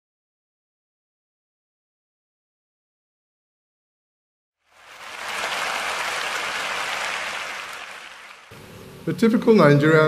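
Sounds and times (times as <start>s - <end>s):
audience applause: 4.7s - 8.5s.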